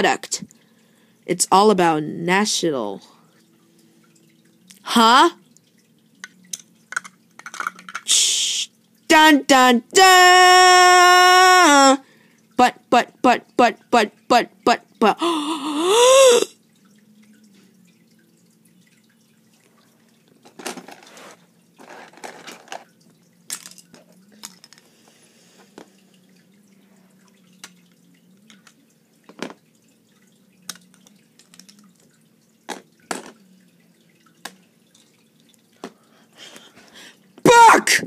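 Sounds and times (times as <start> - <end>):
faint steady low hum: 0.0 - 38.0.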